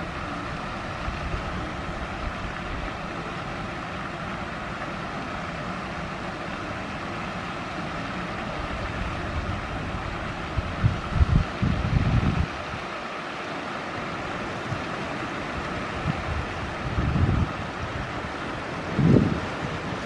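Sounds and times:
outdoor background hiss: 0:00.0 - 0:20.0
wind buffeting microphone: 0:08.7 - 0:12.9, 0:15.6 - 0:20.0.

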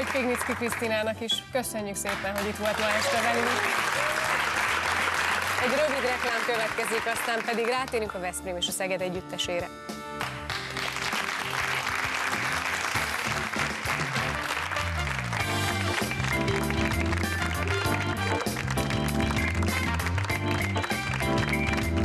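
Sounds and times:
studio audience applauding: 0:00.0 - 0:01.2, 0:02.0 - 0:08.2, 0:10.2 - 0:22.0
theme music with steady beat: 0:07.6 - 0:22.0.

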